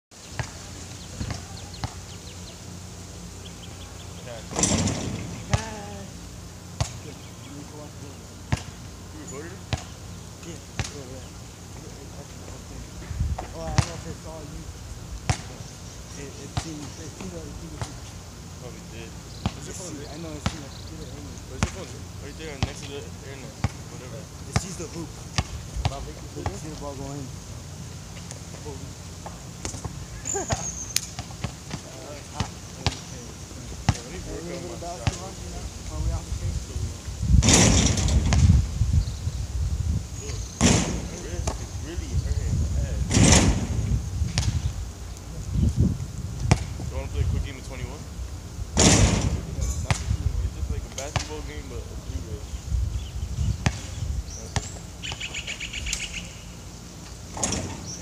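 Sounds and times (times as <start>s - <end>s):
faint distant voices: 0.2s - 38.6s
basketball bouncing on hard court: 46.5s - 46.7s.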